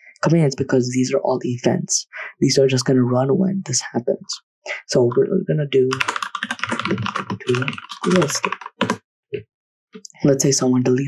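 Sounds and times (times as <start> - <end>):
fast typing on computer keyboard: 5.9 - 9.0.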